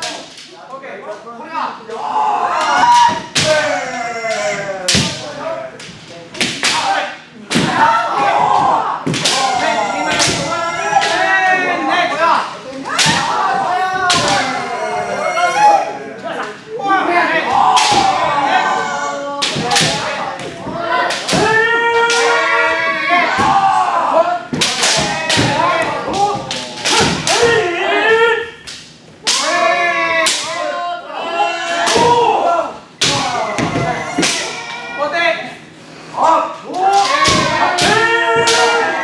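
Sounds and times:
people shouting: 0:01.9 - 0:05.6, 0:06.6 - 0:28.6, 0:29.2 - 0:35.3, 0:36.2 - 0:39.0
bamboo swords striking armour: 0:19.4 - 0:20.2, 0:24.5 - 0:27.6, 0:36.9 - 0:39.0.

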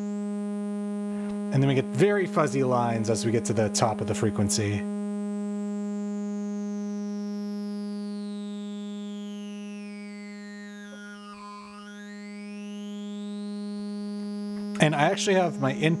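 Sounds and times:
sawtooth tone with sweeping phaser: 0:08.2 - 0:16.0.

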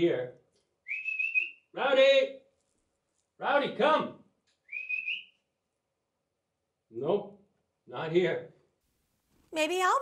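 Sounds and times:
person whistling: 0:00.9 - 0:01.6, 0:04.6 - 0:05.4.

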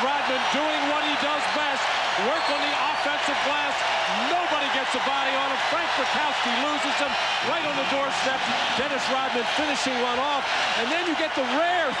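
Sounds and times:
crowd roar: 0:00.0 - 0:12.0
man commentating: 0:00.0 - 0:12.0.

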